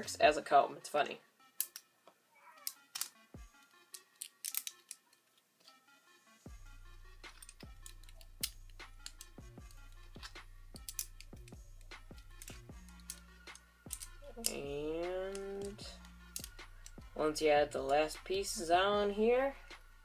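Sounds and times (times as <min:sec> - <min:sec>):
quiet background music: 0:00.0 - 0:20.0
plastic bricks clicking together: 0:01.6 - 0:01.9, 0:02.6 - 0:03.2, 0:03.9 - 0:05.8, 0:07.3 - 0:09.3, 0:10.2 - 0:11.6, 0:12.4 - 0:14.6, 0:16.3 - 0:17.0.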